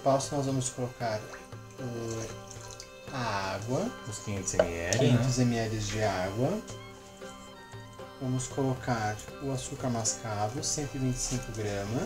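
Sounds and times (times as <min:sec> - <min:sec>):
water pouring into saucepan: 0:00.0 - 0:06.6
background music: 0:00.0 - 0:12.0.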